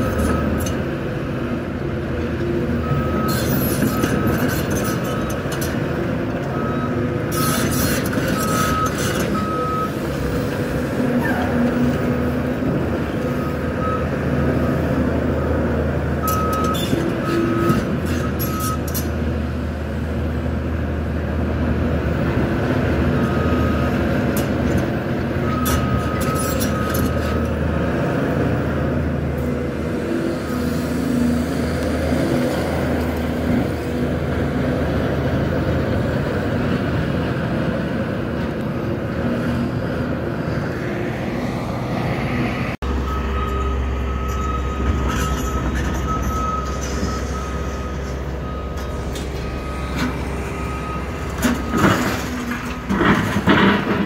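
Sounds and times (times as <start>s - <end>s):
excavator diesel engine running: 0.0s - 54.0s
high engine whine: 25.5s - 54.0s
debris clanking and crunching: 51.3s - 54.0s.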